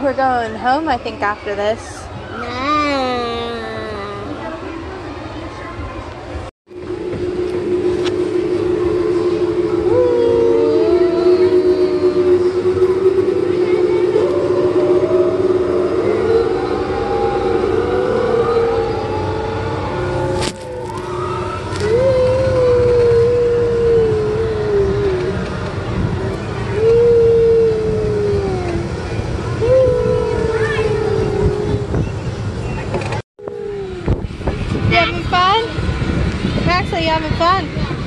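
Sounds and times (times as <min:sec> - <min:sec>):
wind rumbling on microphone: 0:04.2 - 0:38.0
steady drone: 0:06.3 - 0:38.0
wavering gliding tones: 0:06.7 - 0:38.0.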